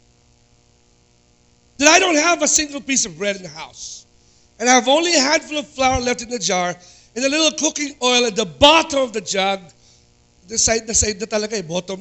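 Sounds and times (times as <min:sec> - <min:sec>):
faint mains hum: 0:00.0 - 0:12.0
man talking: 0:01.8 - 0:04.0, 0:04.6 - 0:09.7, 0:10.5 - 0:12.0.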